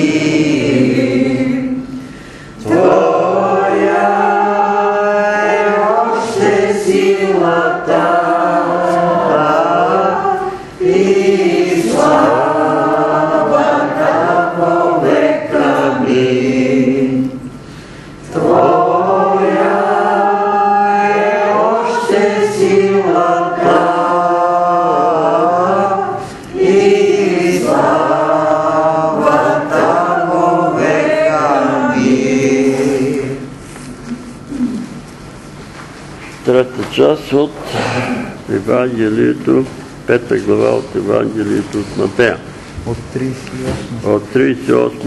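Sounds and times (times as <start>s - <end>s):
group singing worship song: 0.0s - 42.7s
singers breathing: 1.9s - 2.6s, 17.6s - 18.3s.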